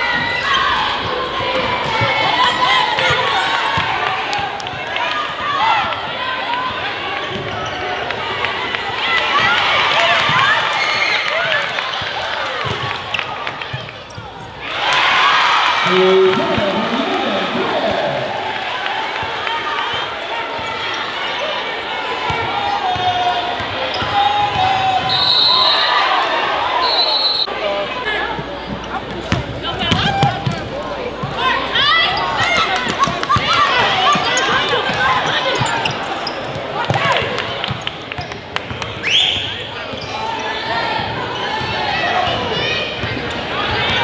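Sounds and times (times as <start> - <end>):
crowd chatter in large hall: 0.0 - 44.0
sneakers squeaking on court: 12.6 - 14.6, 23.8 - 24.8, 32.0 - 40.2
shrill whistle blasts: 25.1 - 26.0, 26.8 - 27.5.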